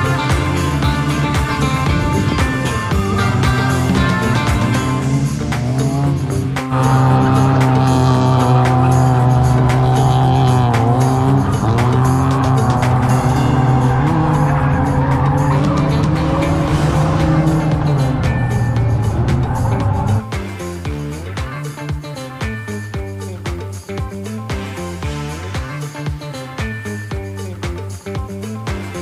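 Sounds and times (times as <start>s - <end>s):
car engine revving high: 0.0s - 20.3s.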